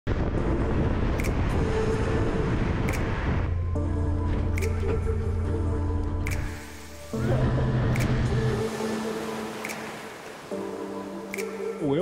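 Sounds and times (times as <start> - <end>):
car wind and road noise: 0.1 - 8.7
background music: 0.1 - 12.0.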